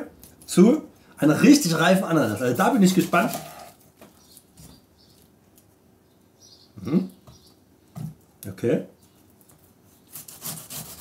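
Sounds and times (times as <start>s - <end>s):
knife sawing into pineapple: 10.1s - 11.0s.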